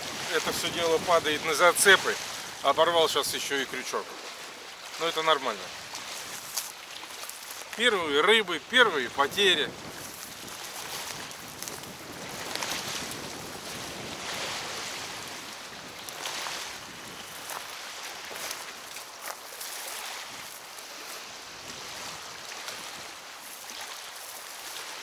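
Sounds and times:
waves washing against riverbank: 0:00.0 - 0:25.0
wind: 0:00.0 - 0:25.0.

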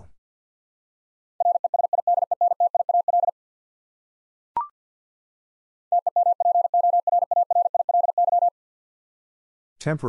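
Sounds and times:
morse code tone: 0:05.9 - 0:08.5.

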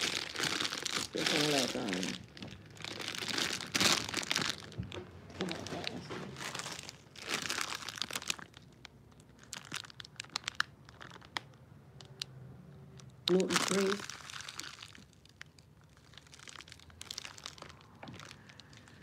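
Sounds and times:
plastic wrapping crinkling: 0:00.0 - 0:12.2, 0:13.0 - 0:19.0.

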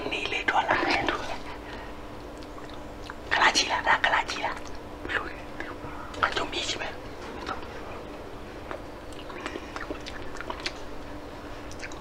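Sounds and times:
man whispering: 0:00.0 - 0:01.6, 0:03.3 - 0:07.0.

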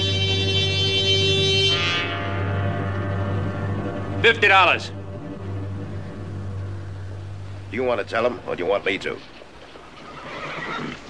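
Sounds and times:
horse whinnying: 0:09.8 - 0:11.0.

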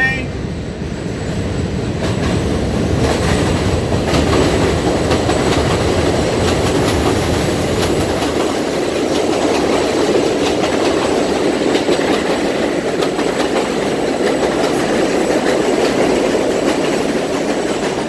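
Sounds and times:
train wheels rumbling on rails: 0:00.0 - 0:18.0
wheels clicking over rail joints: 0:02.0 - 0:18.0.

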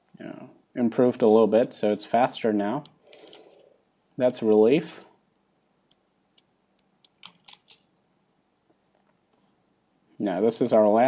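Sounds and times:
keyboard and mouse clicks: 0:02.2 - 0:03.6, 0:05.9 - 0:07.8.

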